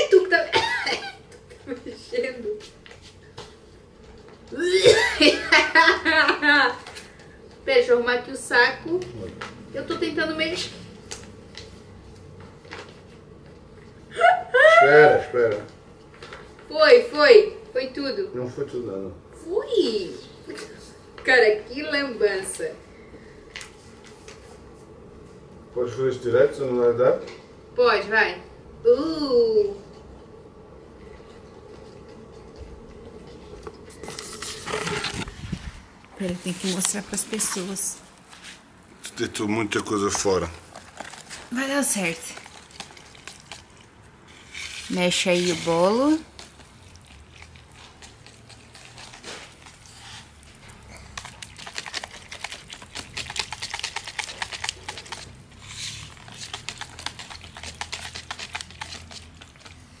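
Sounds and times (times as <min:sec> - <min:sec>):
stick stirring mix in a bucket: 0:31.6 - 1:00.0.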